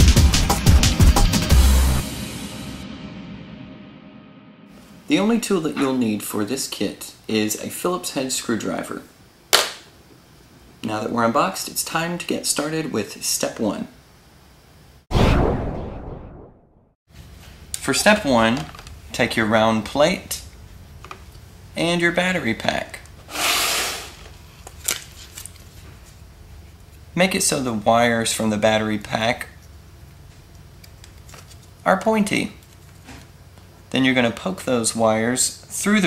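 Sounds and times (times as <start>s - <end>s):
sharp crack: 9.5s - 9.9s.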